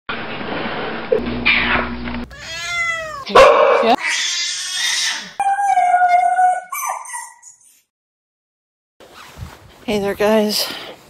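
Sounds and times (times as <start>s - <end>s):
cat meowing: 2.3s - 3.4s.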